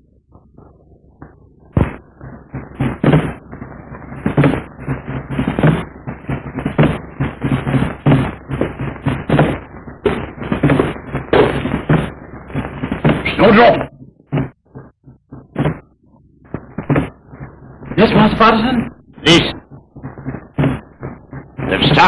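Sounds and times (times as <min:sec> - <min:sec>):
low hum: 0:00.0 - 0:22.0
sharp knocks and cracks: 0:01.2 - 0:18.1, 0:19.6 - 0:22.0.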